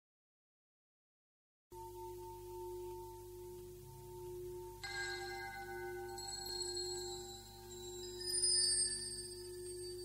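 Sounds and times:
low bell-like ringing: 0:01.7 - 0:10.0
high bell strike: 0:01.8 - 0:10.0.

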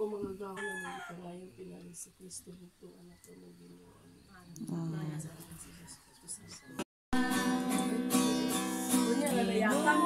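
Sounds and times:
rooster crowing: 0:00.6 - 0:01.3.

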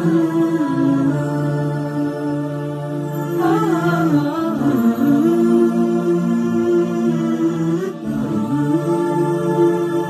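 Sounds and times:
wordless humming voices: 0:00.0 - 0:10.0.

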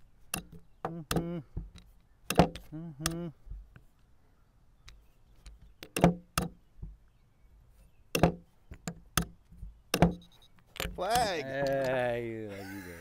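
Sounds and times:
chess pieces knocking on board: 0:08.1 - 0:12.0.

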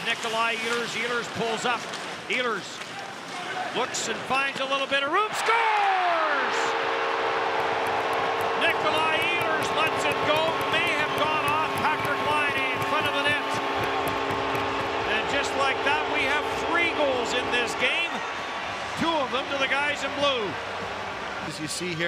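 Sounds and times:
crowd cheering and clapping: 0:05.2 - 0:22.0
arena goal horn: 0:06.4 - 0:18.5.

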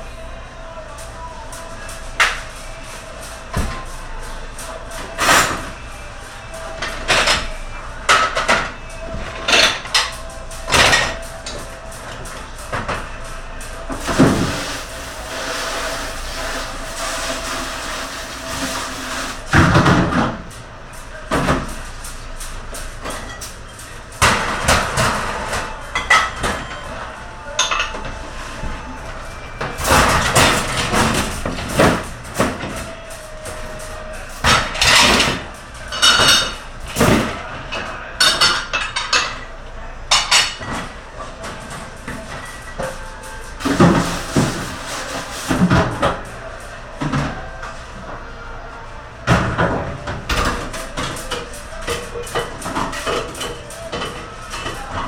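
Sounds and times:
dishes and metal clanking: 0:34.4 - 0:39.5.

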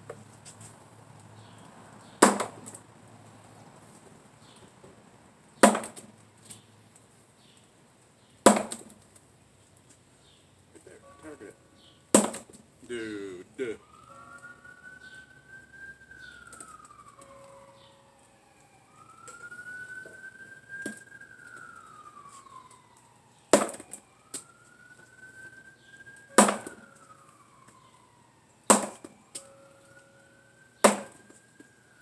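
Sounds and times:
sword striking wooden post: 0:02.2 - 0:02.7, 0:05.6 - 0:06.0, 0:08.5 - 0:08.9, 0:12.2 - 0:12.6, 0:23.6 - 0:23.8, 0:26.4 - 0:26.8, 0:28.7 - 0:29.1, 0:30.8 - 0:31.2
faint siren wailing: 0:10.7 - 0:32.0.

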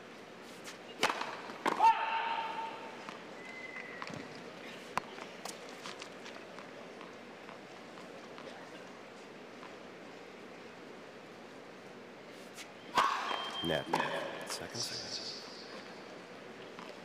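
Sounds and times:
racket striking tennis ball: 0:00.7 - 0:02.5, 0:12.9 - 0:14.4
stadium crowd murmur: 0:06.4 - 0:11.0
ball bouncing on hard court: 0:13.0 - 0:14.3.

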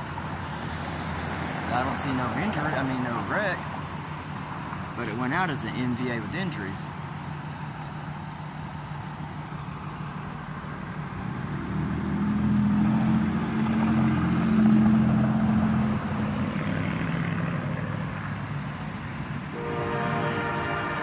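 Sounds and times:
diesel engine hum: 0:00.0 - 0:21.0.

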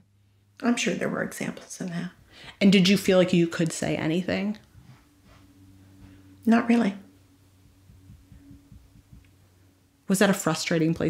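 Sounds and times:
faint low hum with pulses: 0:00.0 - 0:11.0.

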